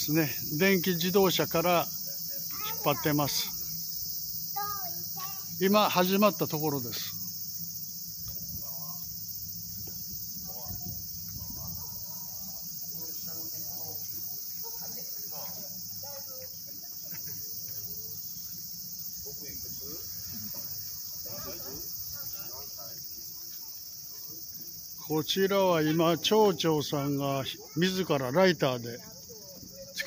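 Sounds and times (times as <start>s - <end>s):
faint distant voices: 0.0s - 30.0s
insects chirring: 0.0s - 30.0s.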